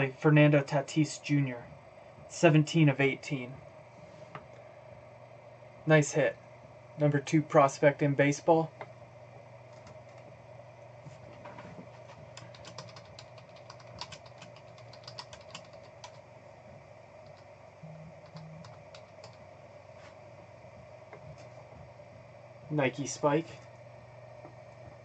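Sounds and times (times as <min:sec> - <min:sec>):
steady hum: 0:00.0 - 0:25.0
computer keyboard typing: 0:09.7 - 0:10.2, 0:12.3 - 0:16.2, 0:17.2 - 0:17.5, 0:18.2 - 0:19.4.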